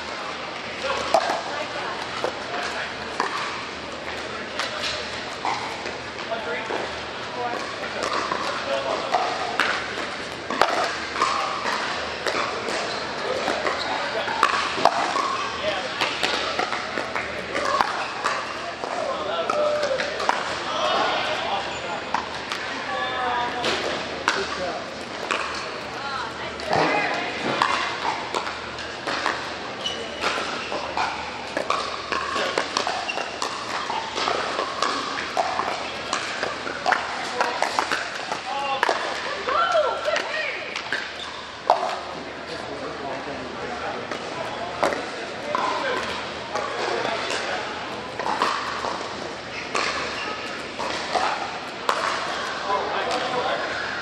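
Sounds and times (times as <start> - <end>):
people talking: 0.1 - 28.5, 33.8 - 40.9, 41.7 - 49.0, 49.6 - 54.0.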